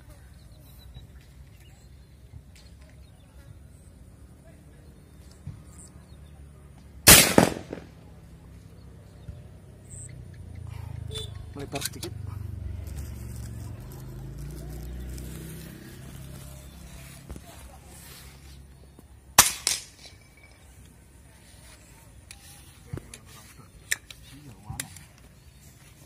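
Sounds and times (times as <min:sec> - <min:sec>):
air rifle shot: 0:07.1 - 0:08.0, 0:19.4 - 0:20.0.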